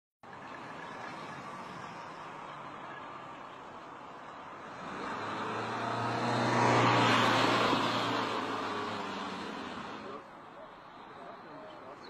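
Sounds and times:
vehicle passing by: 4.4s - 10.3s.

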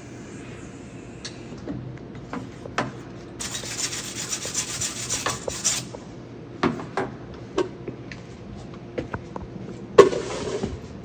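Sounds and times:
wire brush scrubbing metal: 3.4s - 5.9s.

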